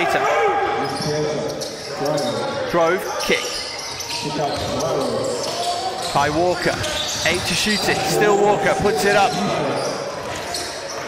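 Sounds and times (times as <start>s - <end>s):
voices in hall: 0.0s - 11.0s.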